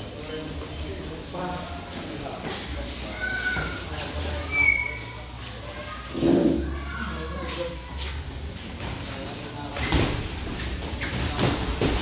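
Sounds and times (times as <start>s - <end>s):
shoes squeaking on canvas: 9.8s - 11.6s.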